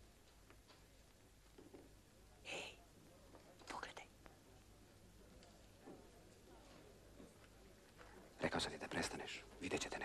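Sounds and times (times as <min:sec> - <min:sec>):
low steady hiss: 0:00.0 - 0:10.0
faint whisper: 0:02.3 - 0:07.0, 0:07.6 - 0:10.0.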